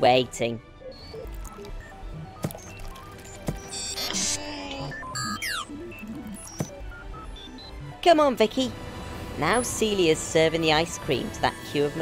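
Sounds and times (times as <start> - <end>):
cartoon background music: 0.0 - 8.8
electronic robot beeps and chirps: 0.9 - 8.2.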